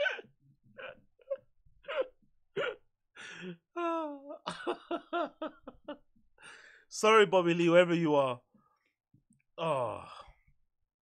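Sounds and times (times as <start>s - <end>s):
man laughing hard: 3.8s - 6.0s.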